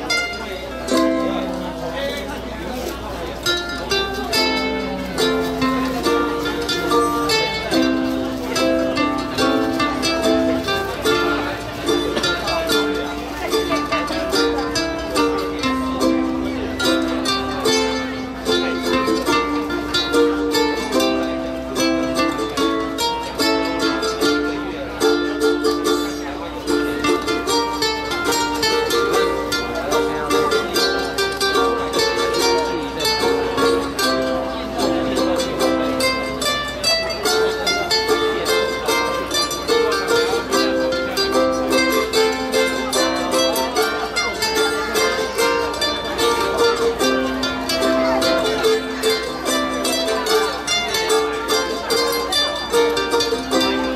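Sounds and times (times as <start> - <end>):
ukuleles strumming chords: 0.0 - 53.9.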